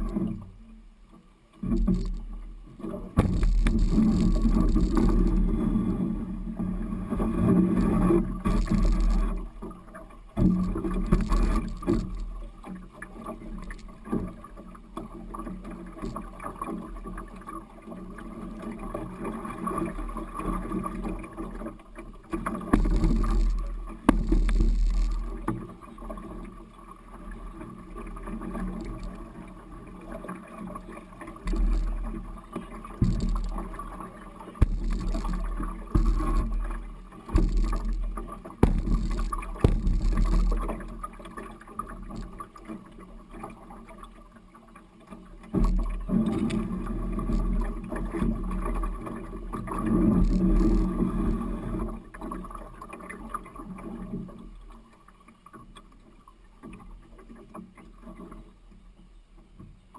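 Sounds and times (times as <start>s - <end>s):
water splashing along hull: 0.0s - 59.9s
hull grinding over stones: 3.2s - 6.1s, 7.2s - 9.8s, 10.4s - 12.4s, 22.4s - 25.6s, 31.5s - 34.0s, 34.6s - 42.4s.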